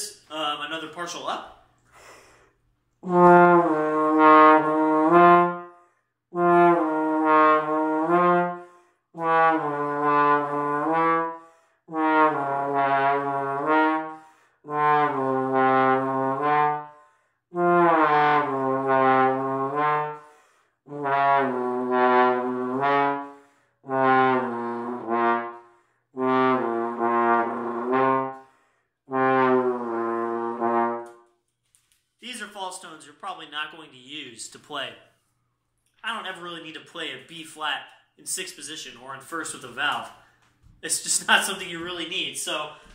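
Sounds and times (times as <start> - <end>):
player breathing: 1.8 - 2.7, 20.2 - 20.8, 28.4 - 28.9
trombone slurred phrases: 3.0 - 5.6, 9.2 - 11.3, 11.9 - 14.1, 14.7 - 16.8, 17.5 - 20.2, 20.9 - 25.6, 26.2 - 28.4, 29.1 - 31.0.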